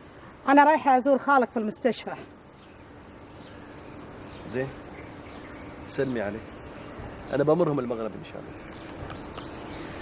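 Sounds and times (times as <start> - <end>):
insects chorus: 0.0 - 10.0.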